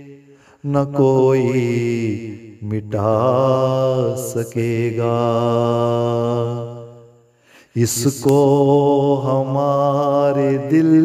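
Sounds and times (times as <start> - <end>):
man singing a long note: 7.8 - 11.0.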